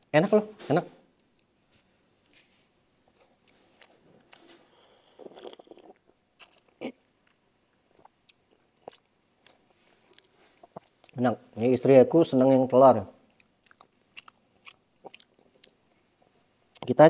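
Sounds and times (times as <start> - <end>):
person chewing: 2.2 - 11.2, 13.3 - 16.0.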